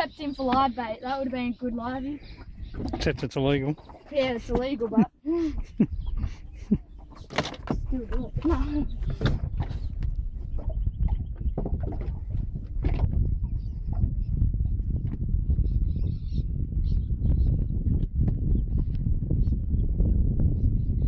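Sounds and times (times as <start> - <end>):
low rumble: 5.2 - 21.0.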